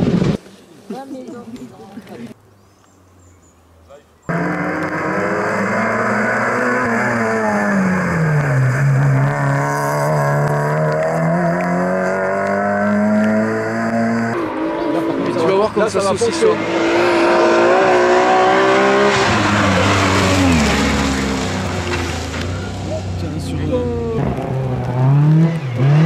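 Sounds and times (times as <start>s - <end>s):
rally car engine revving: 4.3s - 26.0s.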